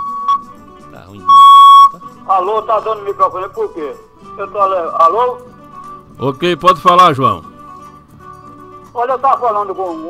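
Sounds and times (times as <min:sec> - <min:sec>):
steady high electronic tone: 0:01.2 - 0:02.0.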